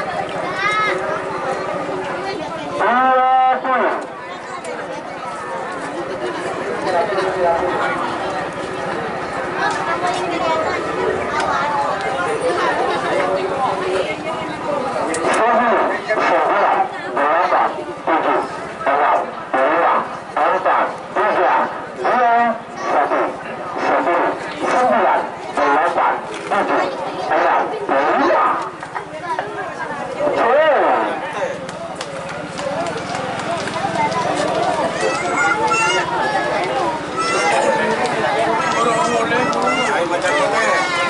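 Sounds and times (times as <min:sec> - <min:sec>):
man talking: 0:30.2 - 0:31.6.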